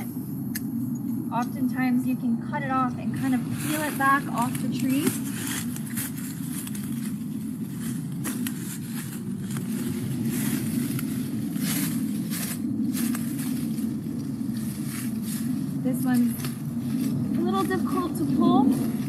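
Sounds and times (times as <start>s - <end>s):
low background rumble: 0.0s - 19.0s
rustling stems and leaves: 2.7s - 19.0s
pruners snipping vines: 8.2s - 9.7s.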